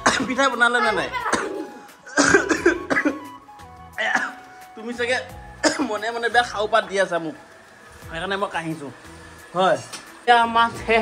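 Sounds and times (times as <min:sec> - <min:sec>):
woman coughing: 0:00.0 - 0:00.5, 0:01.1 - 0:03.3, 0:04.0 - 0:04.4, 0:05.6 - 0:06.0
faint steady background tones: 0:00.0 - 0:11.0.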